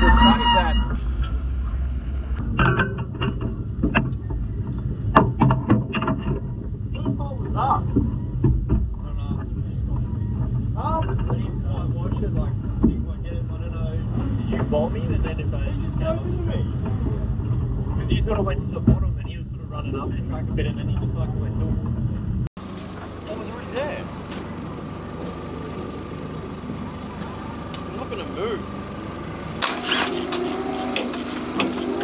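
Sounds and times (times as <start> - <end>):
indistinct voices: 0.0 - 2.0
low engine rumble: 0.0 - 32.0
clanks and knocks: 2.4 - 13.2, 29.6 - 32.0.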